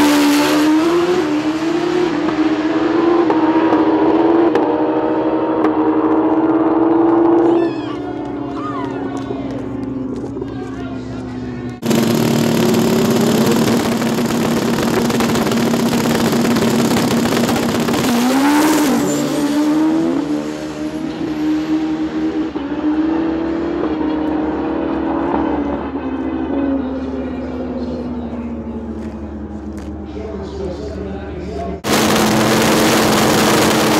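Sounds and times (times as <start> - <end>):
motorcycle engines roaring: 0.0 - 33.9.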